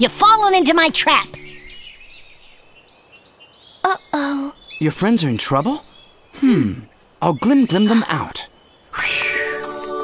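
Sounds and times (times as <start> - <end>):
woodland ambience: 0.0 - 10.0
high bird chirps: 0.3 - 10.0.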